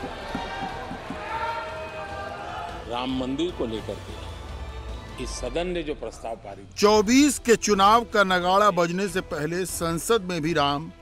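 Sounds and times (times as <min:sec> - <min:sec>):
people thumping desks: 0:00.0 - 0:01.7.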